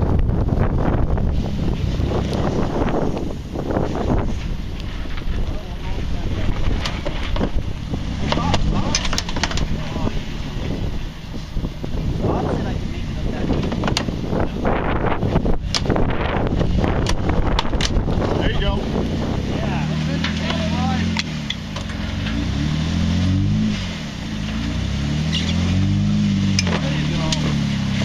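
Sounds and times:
wind on microphone: 0:00.0 - 0:21.2
car engine at low speed: 0:00.0 - 0:28.0.

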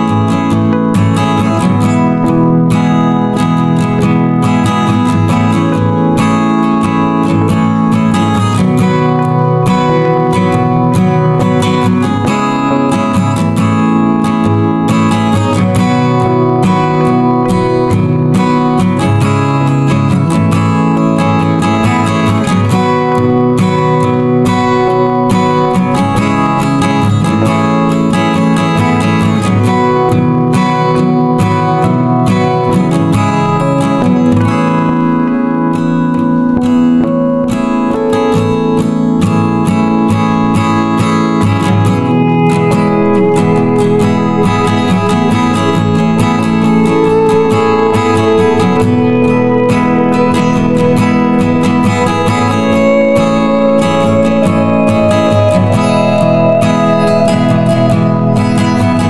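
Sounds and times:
acoustic guitar playing chords: 0:00.0 - 0:59.0.

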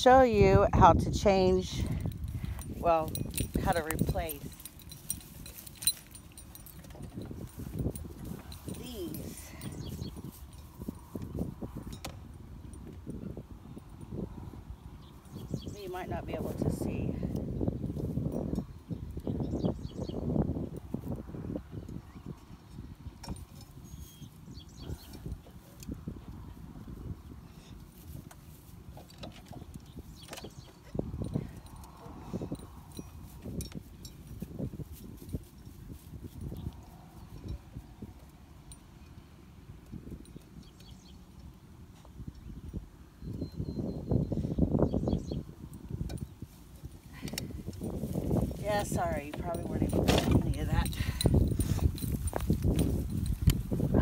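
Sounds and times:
light plastic clicks and clinks: 0:01.9 - 0:10.8, 0:49.1 - 0:53.9.

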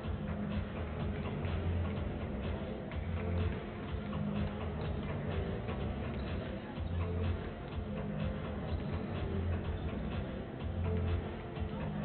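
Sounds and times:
background music with steady bass: 0:00.0 - 0:12.0.

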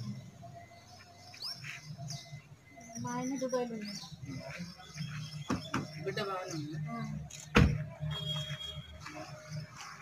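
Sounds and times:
bird chirping: 0:00.0 - 0:07.5
faint outdoor background: 0:00.0 - 0:10.0.

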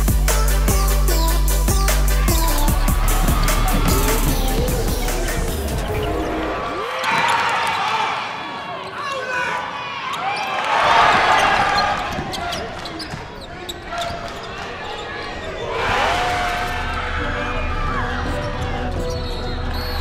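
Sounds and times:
crowd noise: 0:00.0 - 0:20.0
players shouting: 0:01.9 - 0:20.0.

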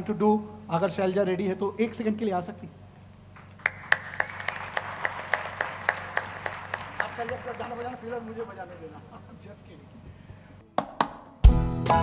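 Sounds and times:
audience clapping in unison: 0:03.4 - 0:08.6
scattered applause: 0:03.4 - 0:08.6.

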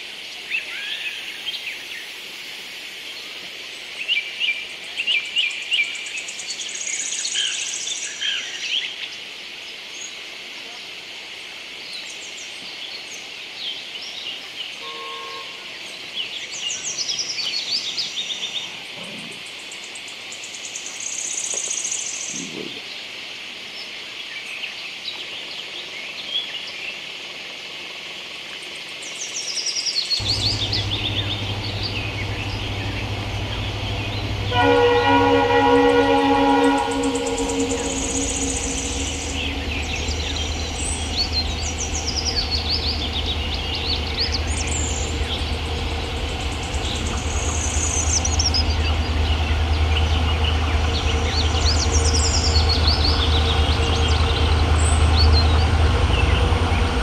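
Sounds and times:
train horn: 0:14.8 - 0:15.8, 0:30.2 - 0:57.0
freight train rumble: 0:30.2 - 0:57.0.

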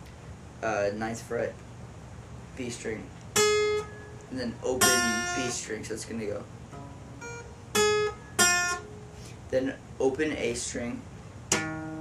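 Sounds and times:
acoustic guitar single notes: 0:03.3 - 0:05.6, 0:06.6 - 0:09.5, 0:11.5 - 0:12.0.

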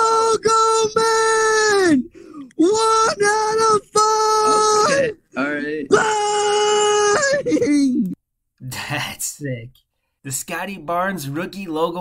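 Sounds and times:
person screaming in excitement: 0:02.6 - 0:08.1.

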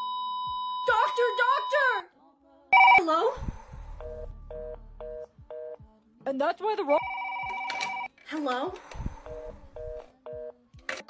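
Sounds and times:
heart monitor flatline beep: 0:00.0 - 0:01.9, 0:02.8 - 0:03.1, 0:03.8 - 0:05.8, 0:07.0 - 0:08.1, 0:09.1 - 0:10.6
telephone ringing: 0:02.8 - 0:03.0, 0:07.0 - 0:08.1.

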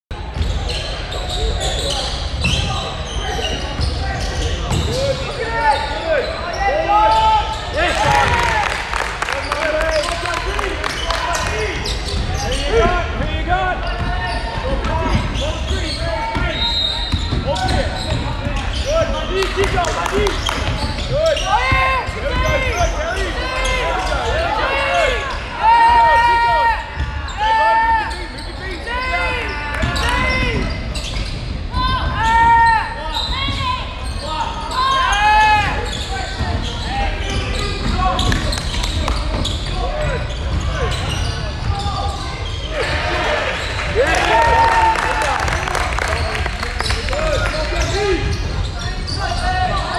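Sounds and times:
sneaker squeaks on floor: 0:00.2 - 0:08.4, 0:10.8 - 0:13.0, 0:13.8 - 0:25.4, 0:29.4 - 0:42.9, 0:46.8 - 0:49.9
basketball bouncing on court: 0:04.7 - 0:05.0, 0:12.0 - 0:22.9, 0:35.9 - 0:41.9.

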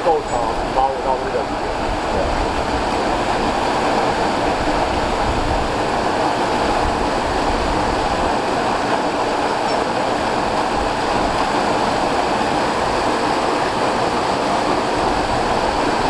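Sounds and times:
waterfall rushing: 0:00.0 - 0:16.0.

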